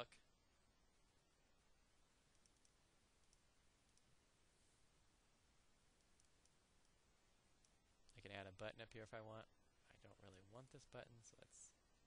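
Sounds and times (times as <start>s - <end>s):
computer mouse clicks: 2.3s - 4.1s, 6.0s - 7.0s.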